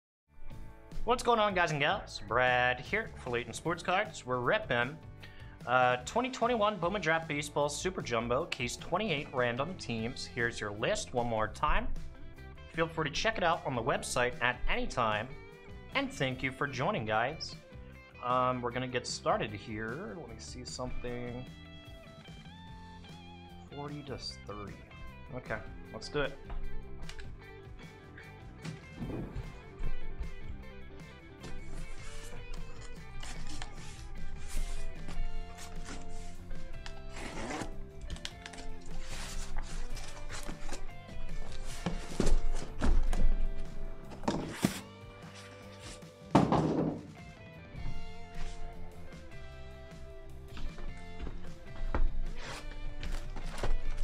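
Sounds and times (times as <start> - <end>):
background music: 0.3 - 54.0
cardboard boxes thunking: 28.7 - 30.4, 41.6 - 43.5, 44.1 - 44.8, 46.3 - 47.1.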